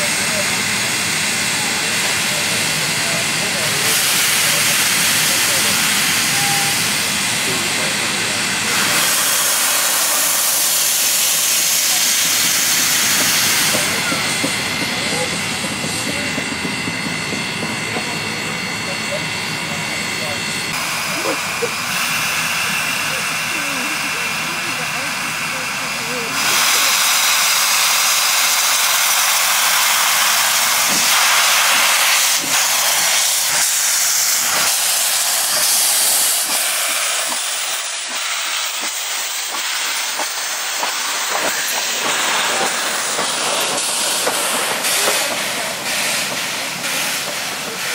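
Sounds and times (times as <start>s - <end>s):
steam locomotive hissing steam: 0.0s - 47.9s.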